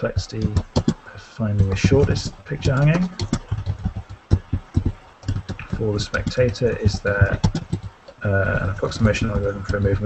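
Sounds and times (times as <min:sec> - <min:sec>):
computer keyboard typing: 0:00.1 - 0:08.0, 0:08.6 - 0:10.0.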